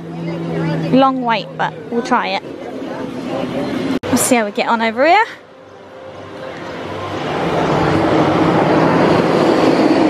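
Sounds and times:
loud rushing mechanical noise: 0:00.0 - 0:04.6, 0:05.4 - 0:10.0
low hum: 0:00.0 - 0:10.0.

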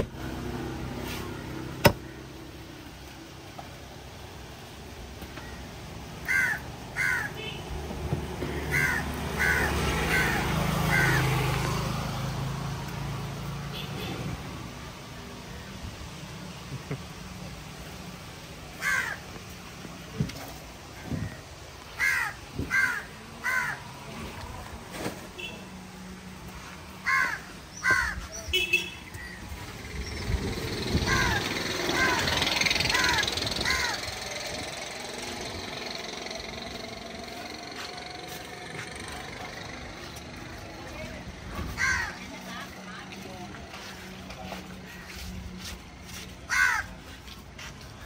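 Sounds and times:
crows cawing: 0:06.2 - 0:07.6, 0:08.4 - 0:11.6, 0:18.7 - 0:19.4, 0:21.0 - 0:24.0, 0:27.0 - 0:28.4, 0:30.8 - 0:40.4, 0:41.6 - 0:42.7, 0:44.5 - 0:48.0.

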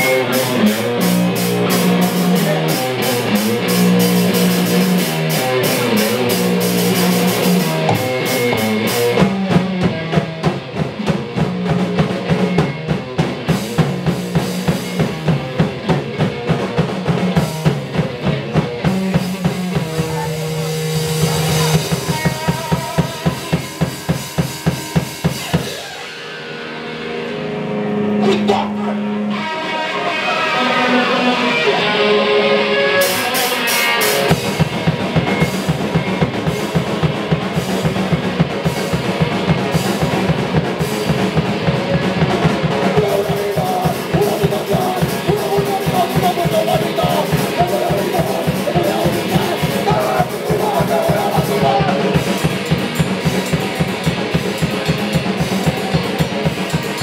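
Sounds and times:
fast driving drums: 0:00.0 - 0:57.0
live punk band playing: 0:00.0 - 0:57.0.

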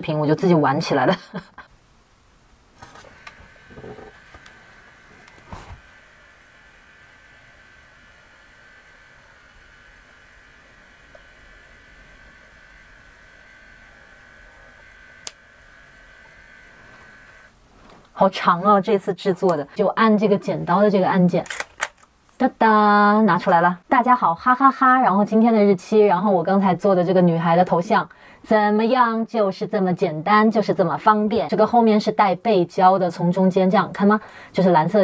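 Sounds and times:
label printer whirring hum: 0:02.8 - 0:17.6.

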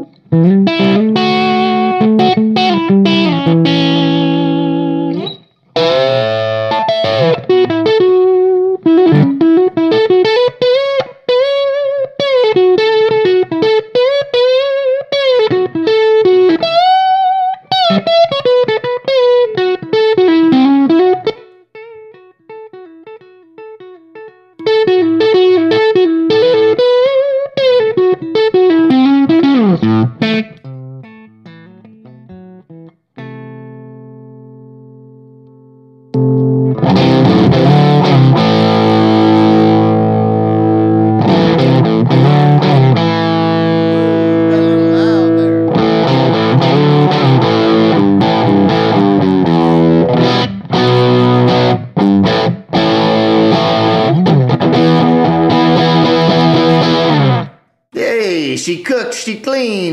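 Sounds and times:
driven electric guitar lead: 0:00.0 - 0:59.9
guitar chord ringing out: 0:04.1 - 0:07.5
clean electric guitar passage: 0:41.3 - 0:47.2.

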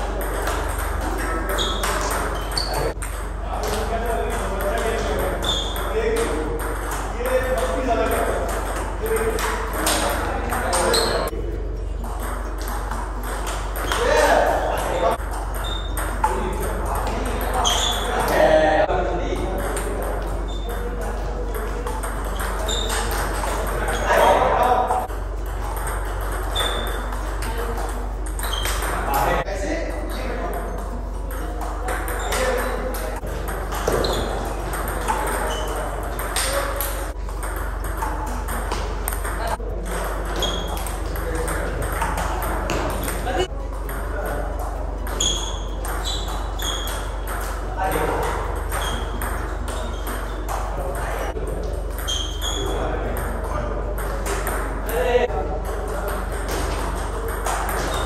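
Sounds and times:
ball bouncing on table: 0:00.0 - 0:11.3, 0:12.0 - 0:18.5, 0:19.3 - 0:29.4, 0:30.4 - 0:58.0.

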